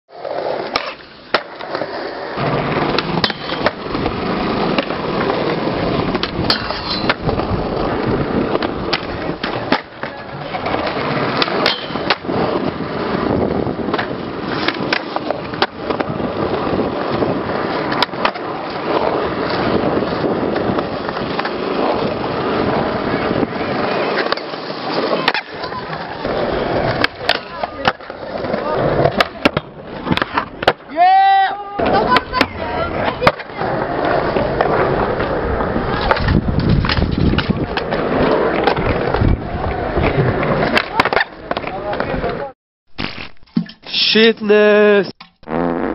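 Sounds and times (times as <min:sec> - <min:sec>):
skateboard wheels rolling on concrete: 0:00.1 - 0:45.9
skateboard clacking: 0:00.2 - 0:42.5.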